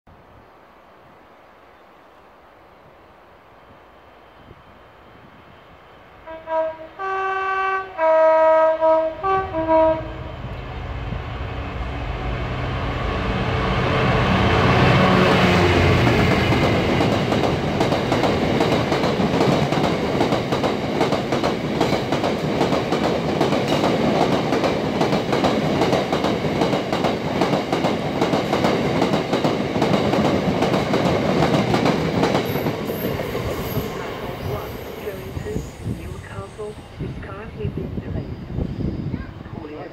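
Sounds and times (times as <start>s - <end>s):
diesel locomotive engine passing: 3.1s - 39.9s
train horn blasts: 6.2s - 10.6s
train wheels clattering over rails: 15.6s - 35.0s.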